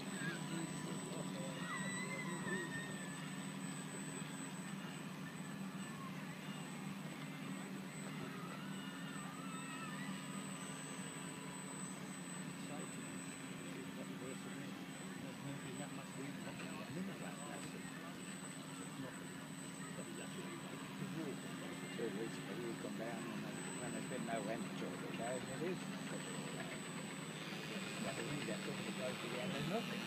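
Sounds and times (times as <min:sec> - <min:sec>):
electric motor humming and whining: 0:00.0 - 0:30.0.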